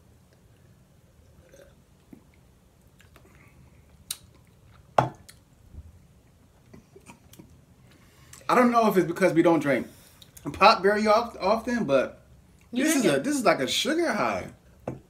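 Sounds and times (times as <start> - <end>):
people sipping and swallowing soda: 0.3 - 5.5.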